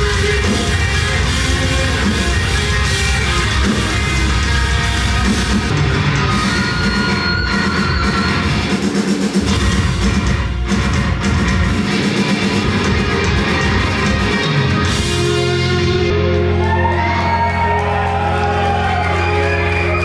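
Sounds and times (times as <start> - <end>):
distorted electric guitars: 0.0 - 20.0
drum kit: 0.0 - 20.0.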